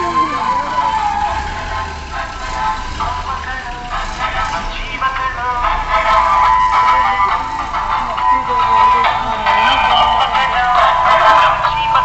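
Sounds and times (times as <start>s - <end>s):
electronic siren: 0.0s - 1.6s
music: 0.0s - 12.0s
vehicle engines running: 0.0s - 12.0s.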